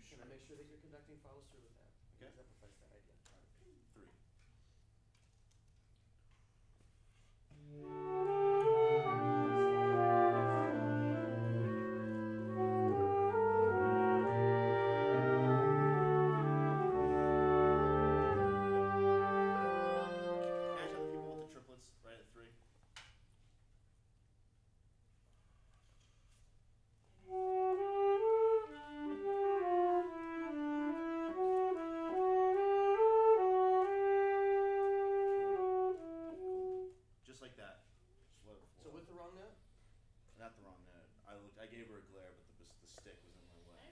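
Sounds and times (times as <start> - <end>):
wind ensemble playing chords: 7.5 - 21.6, 27.2 - 37.0.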